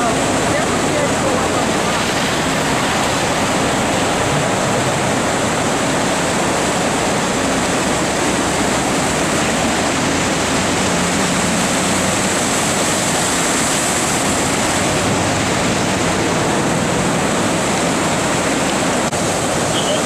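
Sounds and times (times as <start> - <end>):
rushing whitewater river: 0.0 - 20.0.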